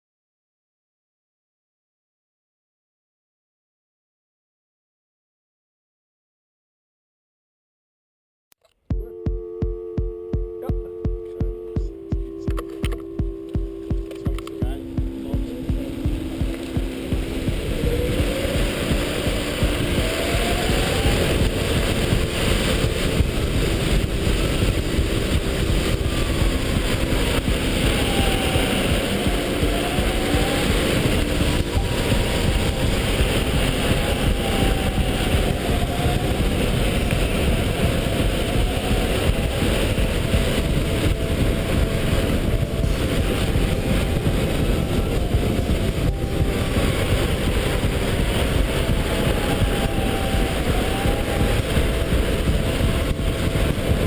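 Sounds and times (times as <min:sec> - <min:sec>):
heavy wind rushing over camera: 0:10.0 - 0:54.0
electric motor whining: 0:11.8 - 0:54.0.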